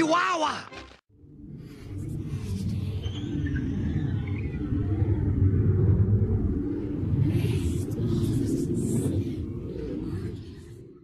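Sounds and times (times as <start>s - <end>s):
low rumble: 1.1s - 11.0s.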